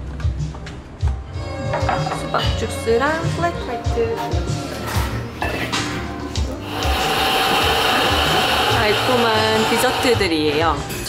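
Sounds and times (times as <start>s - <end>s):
background music: 0.0s - 11.0s
steady machine hiss: 6.6s - 10.3s.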